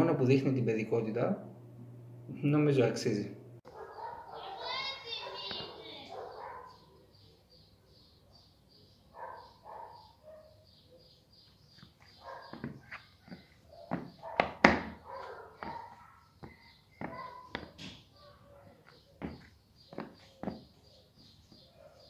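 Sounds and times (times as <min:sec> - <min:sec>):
studded shoes tapping on tile: 0:11.8 - 0:18.0, 0:18.8 - 0:21.7.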